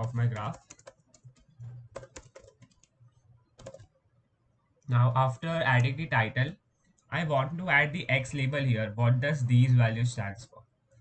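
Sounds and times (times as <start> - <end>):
computer keyboard typing: 0.0 - 4.0.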